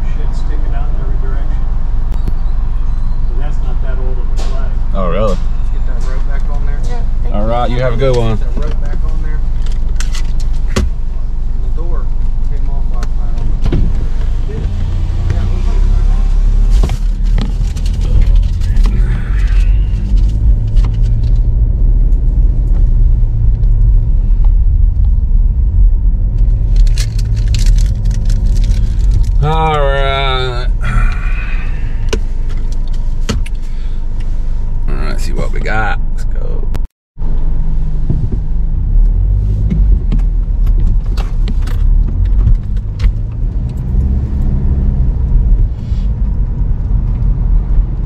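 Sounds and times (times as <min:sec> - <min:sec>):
car engine and road rumble: 0:00.0 - 0:48.0
person speaking: 0:29.4 - 0:32.0, 0:34.9 - 0:36.8.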